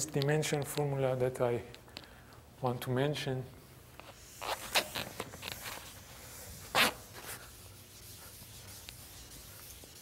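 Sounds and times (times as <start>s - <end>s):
eraser wiping blackboard: 4.1s - 10.0s.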